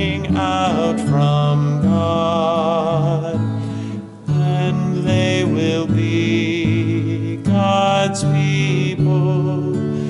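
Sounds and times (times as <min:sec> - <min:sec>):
man singing with vibrato: 0:00.0 - 0:10.0
strummed acoustic guitar: 0:00.0 - 0:10.0.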